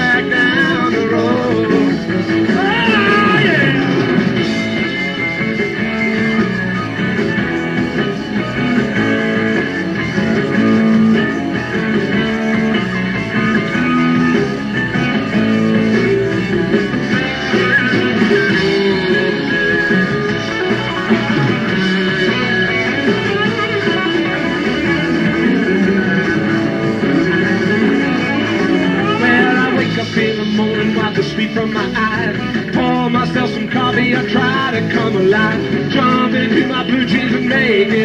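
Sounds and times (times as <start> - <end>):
electric guitar bent notes: 0.0 - 38.0
live rock band playing: 0.0 - 38.0.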